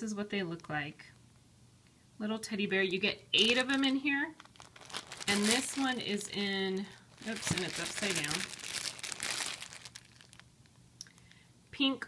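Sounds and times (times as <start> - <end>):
plastic bag crinkling: 3.4 - 11.3.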